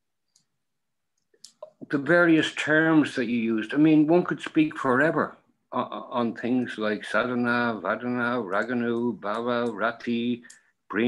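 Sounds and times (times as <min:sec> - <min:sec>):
man speaking: 0:01.5 - 0:11.0.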